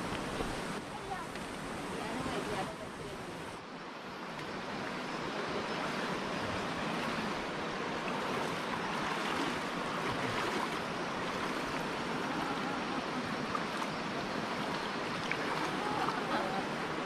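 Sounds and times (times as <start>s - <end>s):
people wading through water: 0.0s - 17.0s
stream water rushing: 0.0s - 17.0s.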